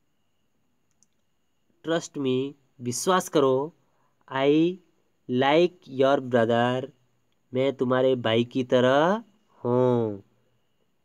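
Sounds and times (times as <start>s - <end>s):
faint short click: 0.8s - 1.3s
man speaking: 1.8s - 10.3s.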